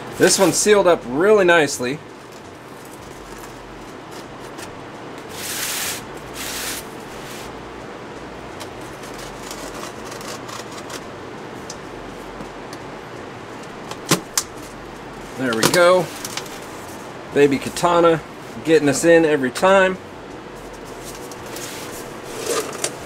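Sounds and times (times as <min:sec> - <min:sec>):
steady low hiss: 0:00.0 - 0:04.1, 0:11.1 - 0:22.3
knife scraping packaging: 0:09.0 - 0:11.0, 0:21.3 - 0:23.0.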